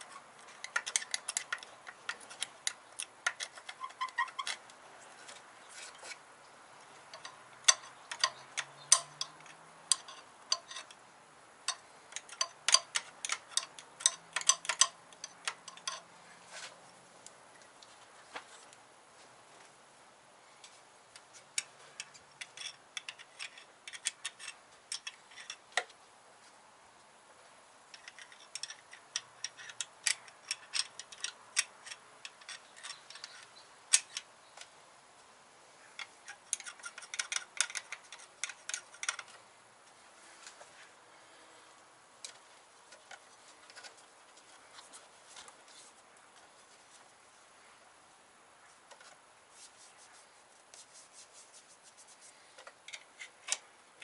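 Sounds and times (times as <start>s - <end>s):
screwdriver scraping metal: 0.0s - 4.6s, 7.2s - 11.0s, 11.7s - 16.1s, 36.0s - 39.3s.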